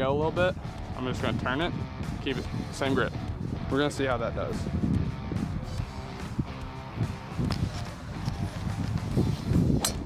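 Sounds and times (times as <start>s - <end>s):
guitar music: 0.0s - 9.4s.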